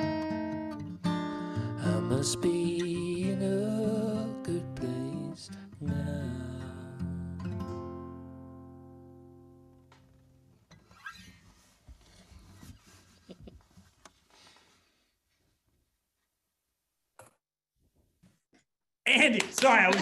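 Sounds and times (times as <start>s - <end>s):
acoustic guitar strumming: 0.0s - 10.6s.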